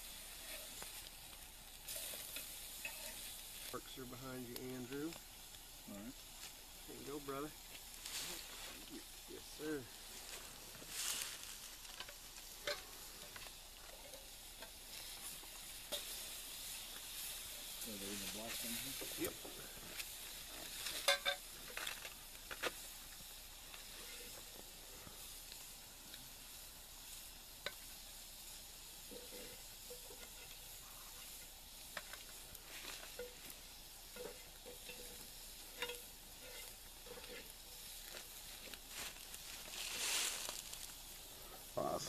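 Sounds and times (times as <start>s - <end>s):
food sizzling on a grate: 0.0s - 42.0s
scraping hiss: 0.0s - 42.0s.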